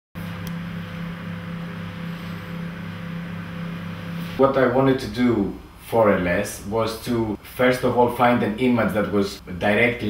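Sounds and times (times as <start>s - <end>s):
low hum with hiss: 0.2s - 10.0s.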